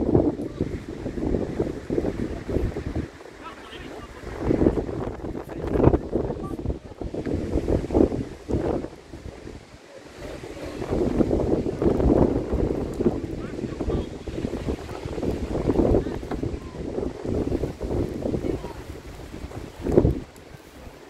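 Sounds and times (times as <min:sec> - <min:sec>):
wind buffeting microphone: 0:00.0 - 0:21.0
faint voices: 0:00.3 - 0:07.2, 0:08.6 - 0:21.0.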